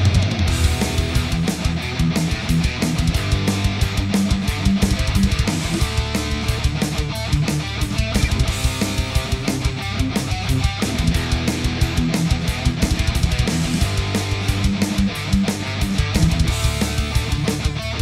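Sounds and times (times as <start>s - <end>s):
bass guitar: 0.0s - 18.0s
distorted electric guitars: 0.0s - 18.0s
fast drums: 0.0s - 18.0s.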